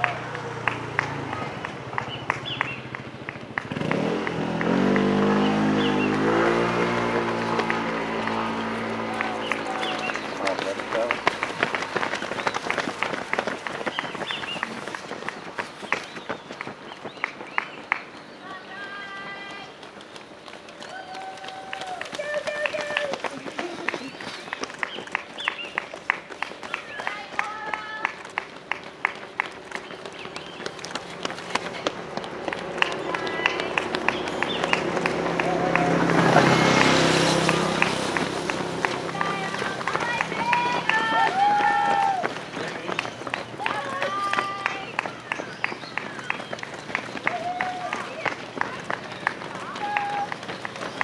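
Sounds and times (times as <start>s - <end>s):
outdoor background noise: 0.0s - 51.0s
runners' footfalls on road: 0.0s - 51.0s
voices calling out: 3.8s - 51.0s.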